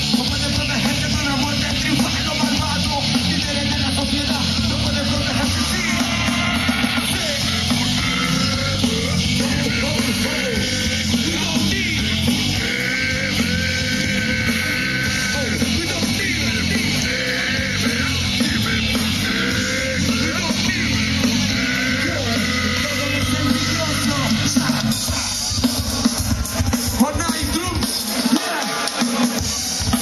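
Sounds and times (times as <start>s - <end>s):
rock band playing live: 0.0s - 30.0s.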